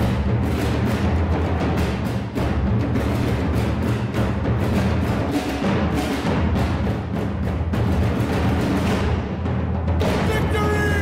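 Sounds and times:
bass drums pounding: 0.0 - 11.0.

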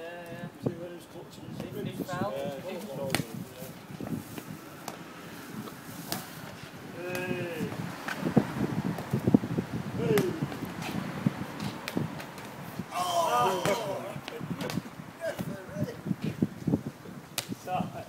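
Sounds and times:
men calling out: 6.9 - 7.9, 9.9 - 10.5, 12.8 - 14.6.

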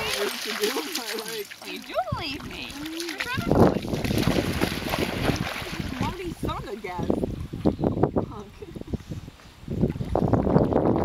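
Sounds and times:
voices talking: 0.0 - 4.0, 5.8 - 7.2
dog splashing through water: 0.0 - 7.0.

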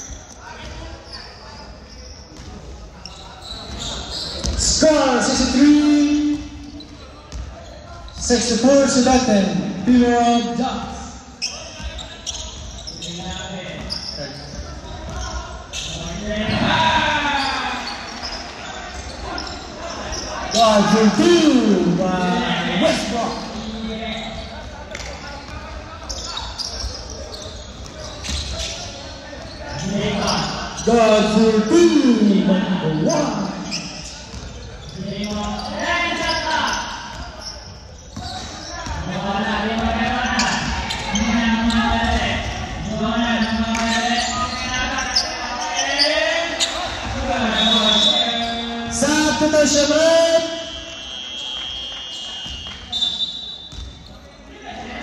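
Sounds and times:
players shouting: 14.8 - 24.5.

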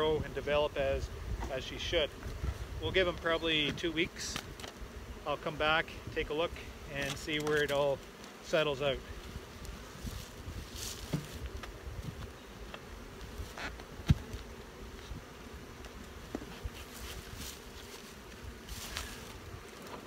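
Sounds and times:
bees buzzing: 0.0 - 20.0.

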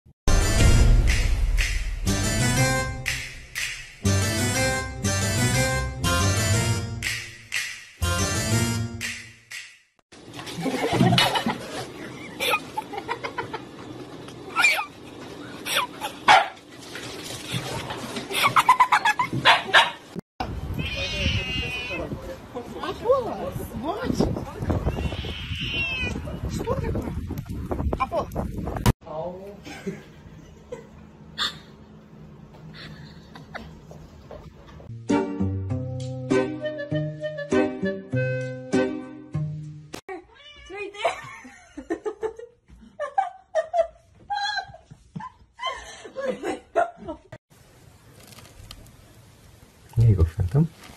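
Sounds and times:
woman laughing: 10.6 - 13.7, 32.7 - 33.8, 40.1 - 47.4
husky yipping and barking: 16.2 - 16.6, 19.4 - 20.1
cat meowing: 20.8 - 22.1, 24.8 - 26.4, 40.3 - 40.8
woman talking: 22.5 - 25.0, 40.6 - 41.2.

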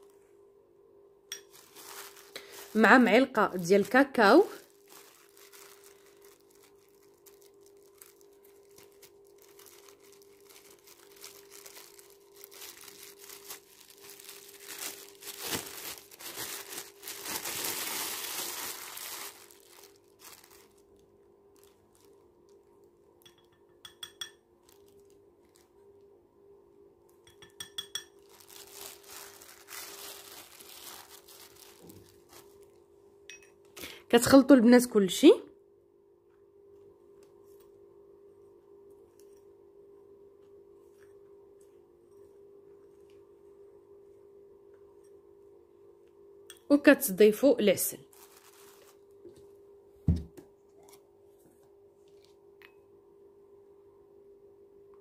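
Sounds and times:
faint steady hum: 0.0 - 55.0
plastic bag crinkling: 1.3 - 22.6, 24.6 - 25.8, 28.2 - 32.8, 48.0 - 49.4.

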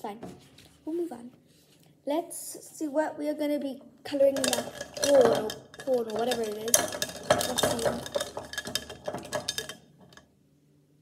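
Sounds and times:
pens clattering in a cup: 4.1 - 10.2.

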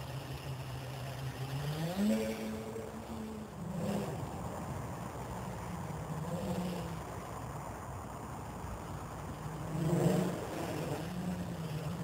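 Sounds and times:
drone propellers buzzing: 0.0 - 12.0.

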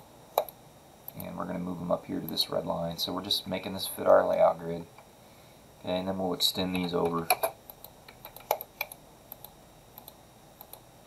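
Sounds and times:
mouse and keyboard clicks: 6.7 - 10.8.

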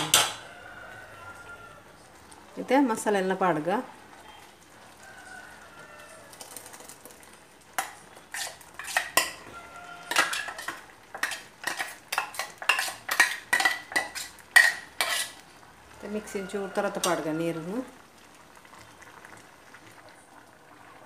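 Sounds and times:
steel vessels clinking: 7.8 - 15.4.

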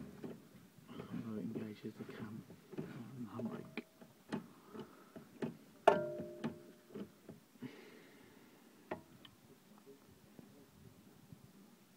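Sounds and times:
loud ringing metal clank: 5.9 - 6.7.

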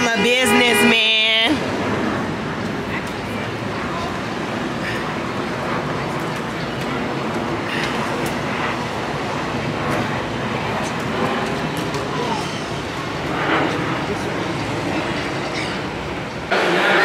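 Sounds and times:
traffic rumble: 0.0 - 17.0.

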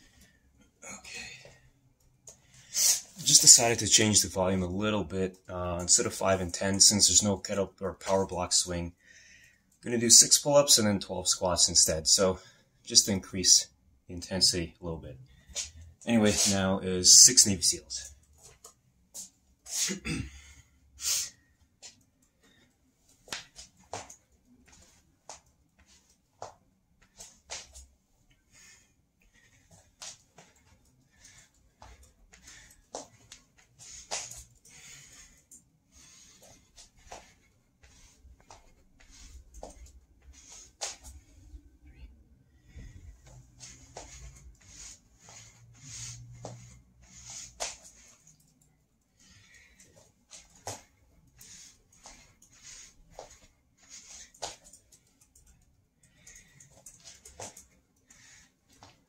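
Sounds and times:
heavy breathing: 27.2 - 59.0.

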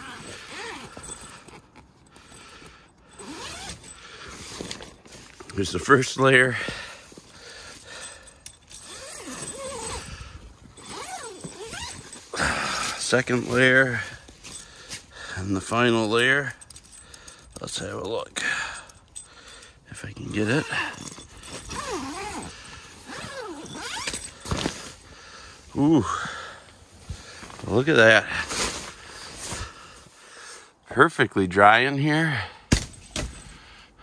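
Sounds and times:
tent zipper being opened: 0.0 - 5.9, 7.0 - 14.7, 20.3 - 25.1.

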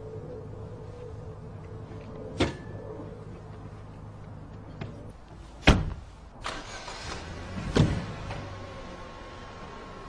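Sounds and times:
low steady hum: 0.0 - 5.4
car doors slamming shut: 5.6 - 6.0.

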